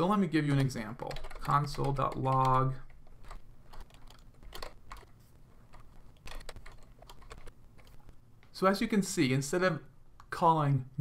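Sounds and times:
computer keyboard typing: 0.8 - 8.1.

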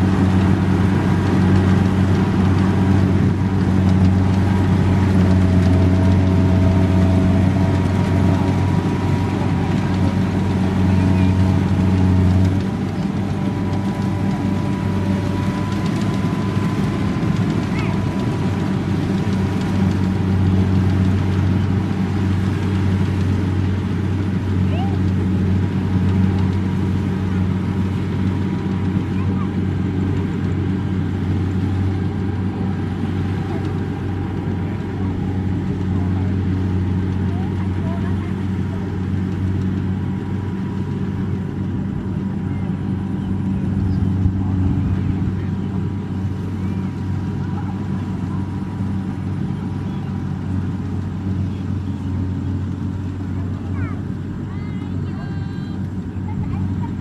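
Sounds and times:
diesel engine droning: 0.0 - 57.0.

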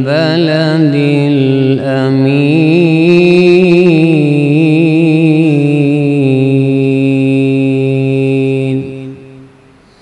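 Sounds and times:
man reciting long melodic note: 0.0 - 10.0.

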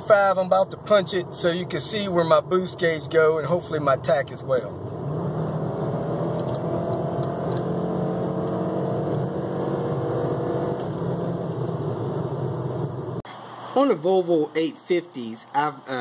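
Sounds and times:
car engine at full throttle: 0.0 - 13.8.

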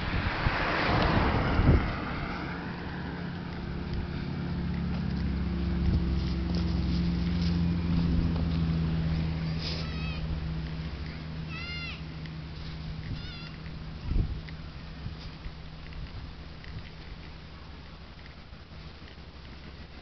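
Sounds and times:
vehicle engine droning: 0.0 - 20.0
high-pitched animal calls: 9.5 - 10.3, 11.1 - 12.1, 13.0 - 14.2.

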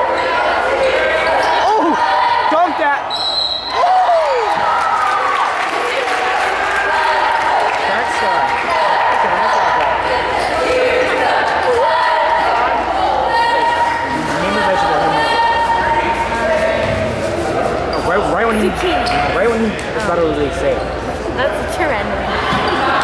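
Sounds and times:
spectators chattering and calling out: 0.0 - 23.0
referee whistle: 3.1 - 3.8.

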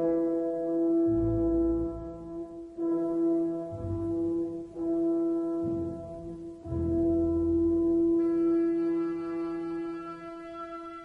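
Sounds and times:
orchestra holding brass chords: 0.9 - 11.0.

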